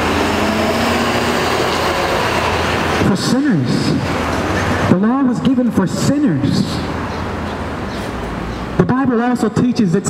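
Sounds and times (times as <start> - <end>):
train rumbling overhead: 0.0 - 8.8
street traffic passing: 0.0 - 10.0.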